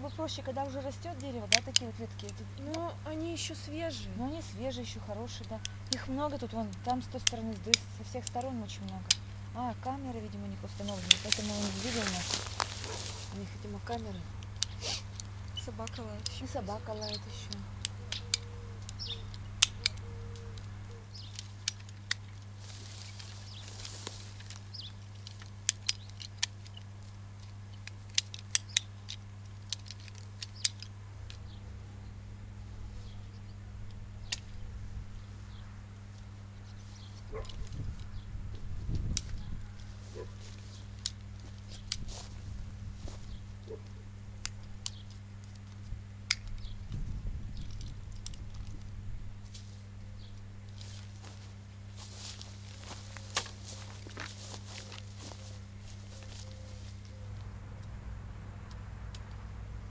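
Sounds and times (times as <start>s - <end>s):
pruning shears snipping branches: 0.0s - 31.6s, 32.8s - 34.7s, 36.1s - 47.0s, 47.6s - 58.0s
steady low hum: 0.0s - 59.9s.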